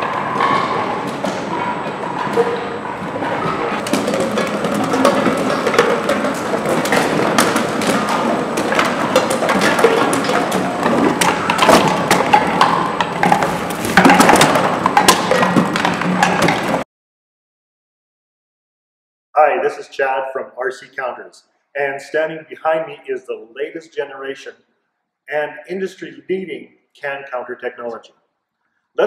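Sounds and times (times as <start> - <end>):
bottles and cans clattering: 0.0 - 16.8.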